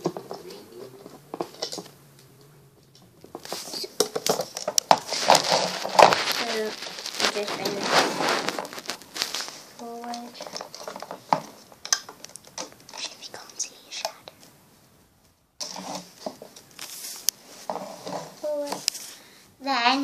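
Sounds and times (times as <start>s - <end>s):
rubber bands crinkling on plastic loom: 0.0s - 14.5s, 15.6s - 19.2s.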